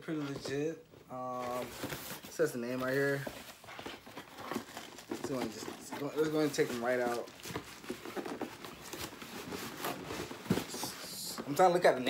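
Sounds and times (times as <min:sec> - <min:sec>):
paper and cardboard rustling: 0:00.0 - 0:12.0.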